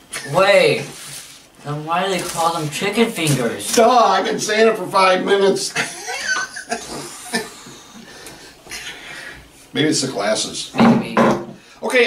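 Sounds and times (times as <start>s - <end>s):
people laughing: 5.7s - 8.1s.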